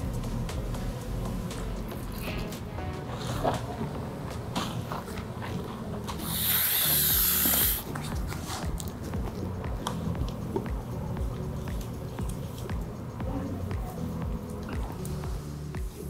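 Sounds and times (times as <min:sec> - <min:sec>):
soft background music: 0:00.0 - 0:16.0
loud hiss: 0:06.2 - 0:07.9.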